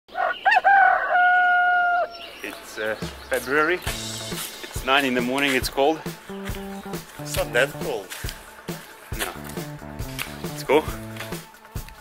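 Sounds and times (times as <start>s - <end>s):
rooster crowing: 0.1s - 2.2s.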